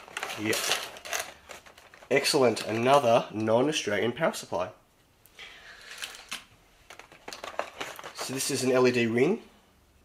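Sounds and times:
rustling packaging: 0:00.0 - 0:03.3, 0:05.7 - 0:09.3.

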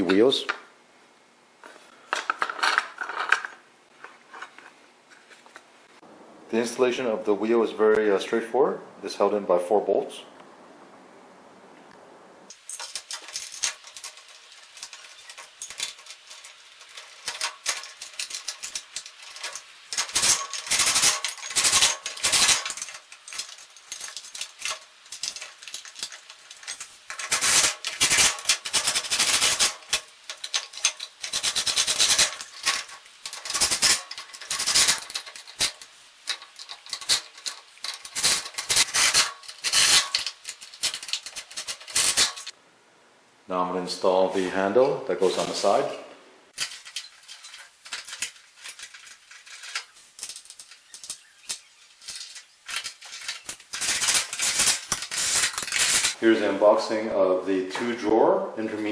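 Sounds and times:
metal clattering: 0:12.5 - 0:42.6, 0:46.5 - 0:56.2.

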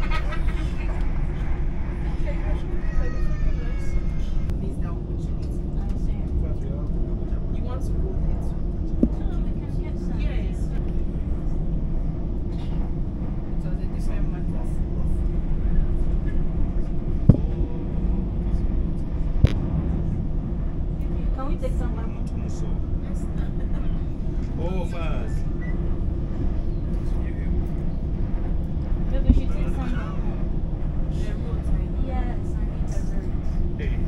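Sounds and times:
train rumble inside carriage: 0:00.0 - 0:34.0.

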